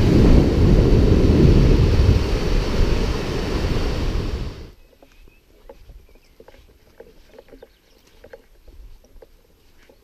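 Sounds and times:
footsteps on grass: 4.8s - 10.0s.

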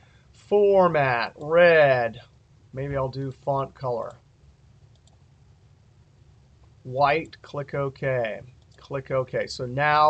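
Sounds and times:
man speaking: 0.5s - 4.2s, 6.9s - 10.0s
computer mouse clicks: 4.9s - 5.2s, 8.5s - 8.9s.

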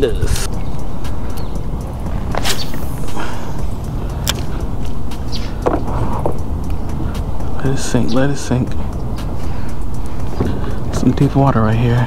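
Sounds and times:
wind rumble on microphone: 0.0s - 12.0s
fishing rod swish: 2.3s - 3.6s.

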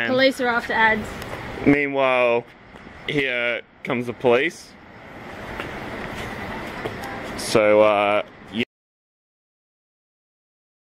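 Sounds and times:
rushing vehicle noise: 2.4s - 8.6s.

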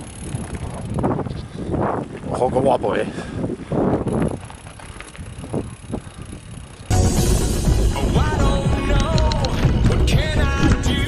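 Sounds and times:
mountain bike on dirt track: 0.0s - 11.0s
background music: 6.9s - 11.0s.

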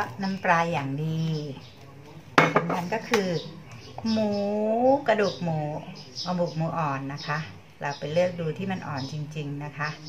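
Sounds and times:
dishes clinking: 2.4s - 2.9s.

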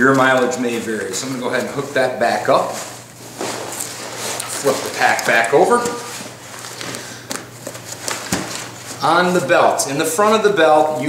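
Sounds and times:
backpack fabric rustling: 0.0s - 11.0s.

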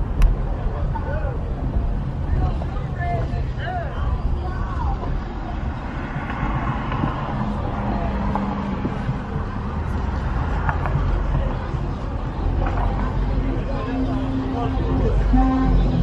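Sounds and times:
car driving low rumble: 0.0s - 16.0s
faint voices: 0.0s - 16.0s.

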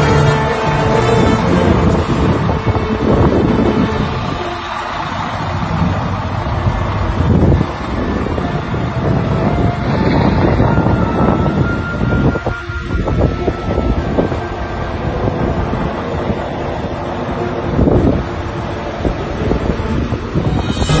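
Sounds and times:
semi-trailer rolling slowly: 0.0s - 21.0s
scraper blade pushing snow: 20.6s - 21.0s.

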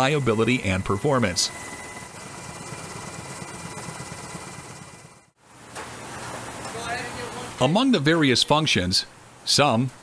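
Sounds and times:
faint high whine: 0.0s - 5.4s.

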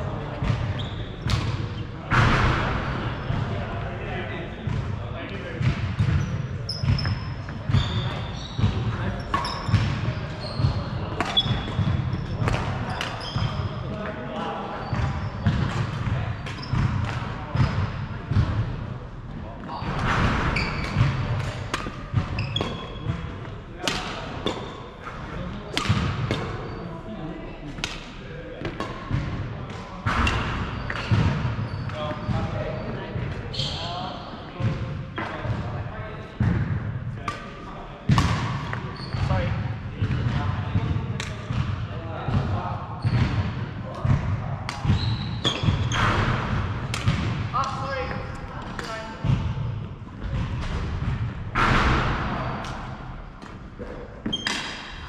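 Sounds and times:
rackets hitting shuttlecock: 6.8s - 13.6s, 19.8s - 24.7s, 25.7s - 26.6s, 44.0s - 49.4s, 50.3s - 55.0s.

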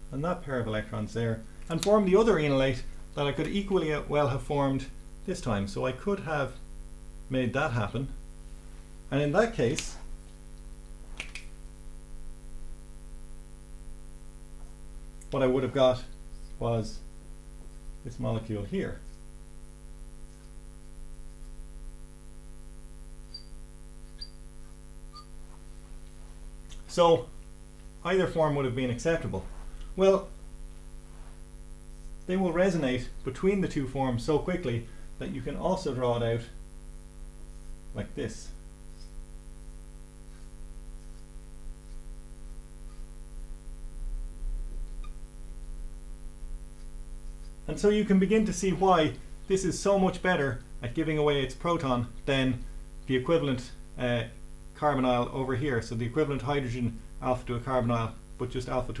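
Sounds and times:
electrical mains hum: 0.0s - 59.0s
marker squeaking on glass: 23.2s - 25.6s, 44.9s - 45.2s.

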